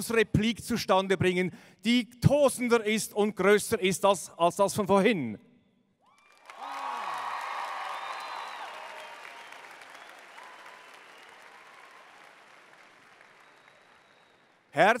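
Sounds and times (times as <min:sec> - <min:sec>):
crowd applauding and cheering: 0:06.0 - 0:14.8.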